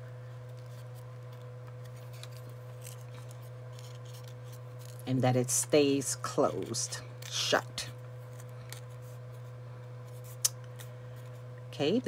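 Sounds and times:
steady low hum: 0:00.0 - 0:12.0
paper rustling around stick: 0:00.4 - 0:05.1.

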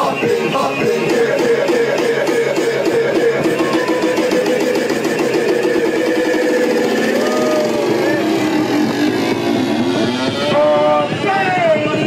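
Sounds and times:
boat engine running: 0:00.0 - 0:12.0
people's voices: 0:00.0 - 0:12.0.

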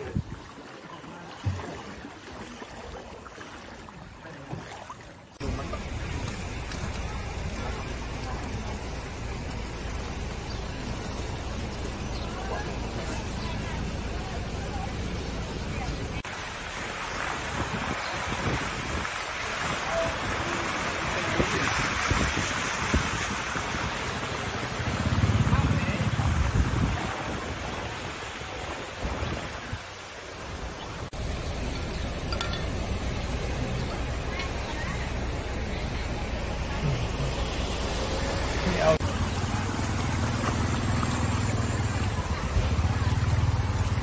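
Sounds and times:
wind noise on microphone: 0:17.4 - 0:20.5, 0:21.1 - 0:24.2, 0:24.9 - 0:30.0.

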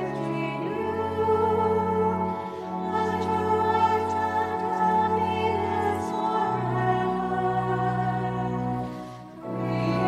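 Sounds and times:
sustained accompanying chords: 0:00.0 - 0:10.0.

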